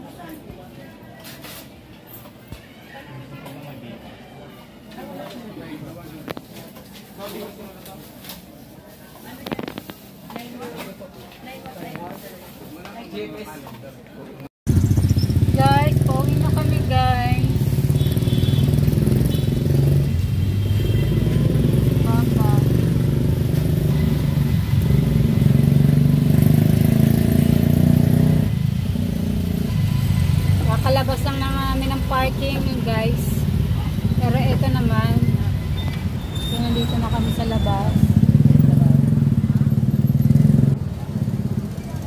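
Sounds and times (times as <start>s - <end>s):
city traffic: 14.6s - 42.0s
voices: 15.1s - 25.6s, 29.6s - 42.0s.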